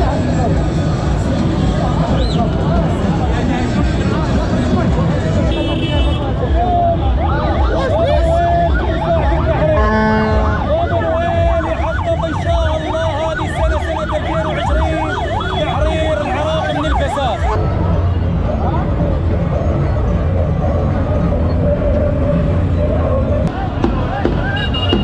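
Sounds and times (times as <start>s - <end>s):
crowd noise: 0.0s - 25.0s
emergency siren wailing: 6.8s - 18.1s.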